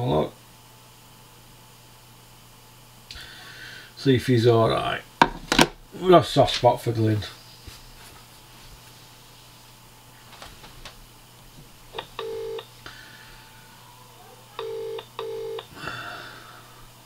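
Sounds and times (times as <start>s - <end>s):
telephone ringing tone: 11.9s - 12.7s, 14.6s - 15.7s.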